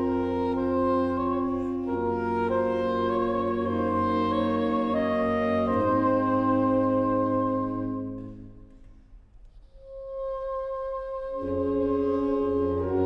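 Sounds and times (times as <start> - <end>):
saxophone quartet playing chords: 0.0 - 9.1, 9.8 - 13.0.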